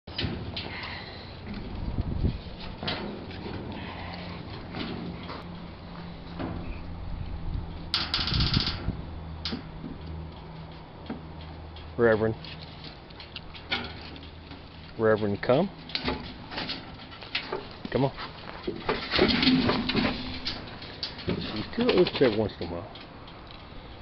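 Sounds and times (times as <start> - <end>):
steady low hum: 0.1 - 24.0.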